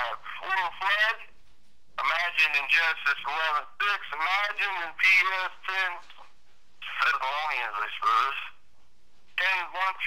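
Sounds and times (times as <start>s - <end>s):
person talking over telephone: 0.0s - 1.3s, 2.0s - 8.6s, 9.4s - 10.0s.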